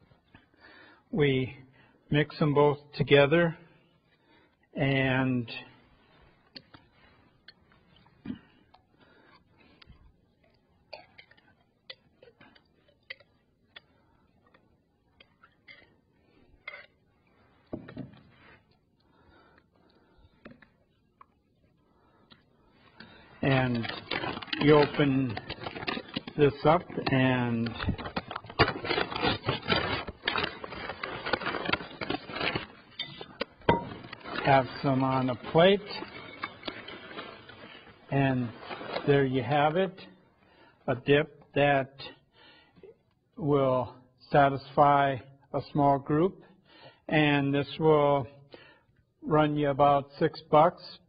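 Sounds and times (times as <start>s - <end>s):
plastic chip bag crinkling: 22.9s - 40.7s.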